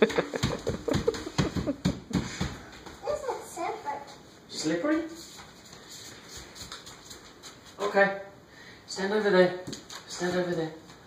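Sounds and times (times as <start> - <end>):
bare feet patting on paper: 0.0 - 3.1, 5.2 - 7.8.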